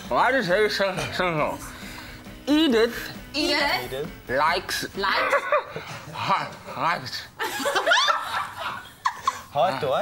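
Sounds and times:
people laughing: 7.4 - 9.6.

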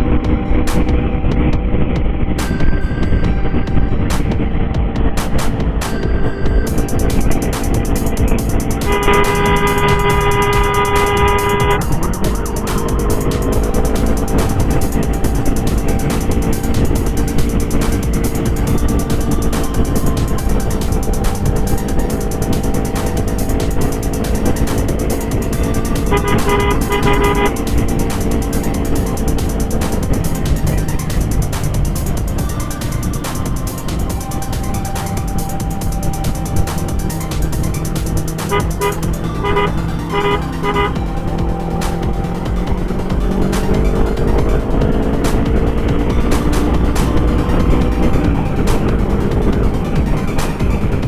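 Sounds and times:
motorcycle road and wind noise: 0.0 - 51.0
vehicle horn: 6.7 - 20.6, 21.4 - 30.2, 38.3 - 42.0.

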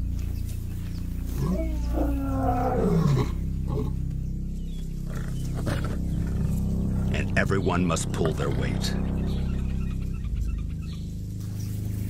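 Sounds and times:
lions calling: 1.2 - 7.4.

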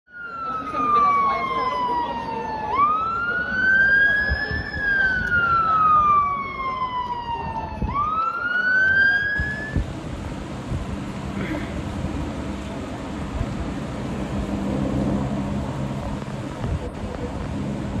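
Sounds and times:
emergency siren wailing: 0.1 - 9.8
low rumble of street noise: 0.1 - 18.0.

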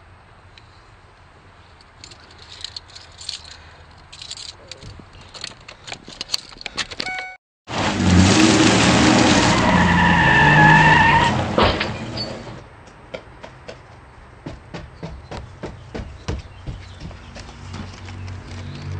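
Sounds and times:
truck tyres spinning and squealing: 7.7 - 12.6.

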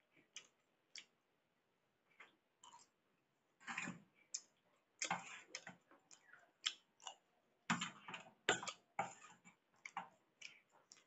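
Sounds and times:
chewing: 0.1 - 1.2, 3.7 - 11.0.

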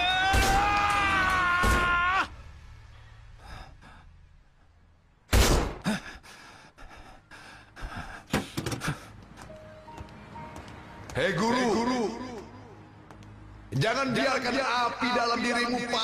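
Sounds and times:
faint music: 8.9 - 16.0.

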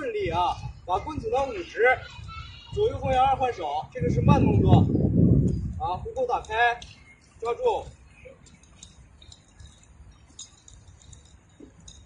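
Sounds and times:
nunchaku chain clicking: 5.4 - 12.0.

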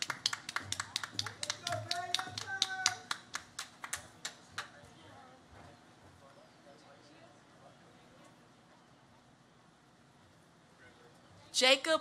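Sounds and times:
people clapping: 0.0 - 4.8.

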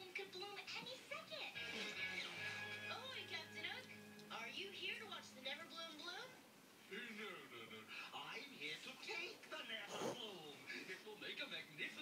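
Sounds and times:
television music: 0.0 - 12.0
television voices: 0.0 - 12.0.

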